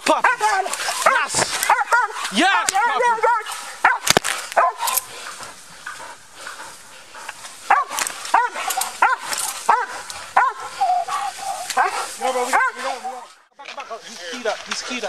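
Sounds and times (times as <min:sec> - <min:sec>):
dog barking: 0:00.1 - 0:05.5, 0:07.7 - 0:13.3.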